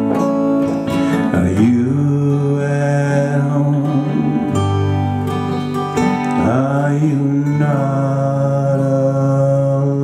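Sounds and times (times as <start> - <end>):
acoustic guitar: 0.0 - 10.0
man singing a long low note: 1.3 - 4.8, 6.4 - 10.0.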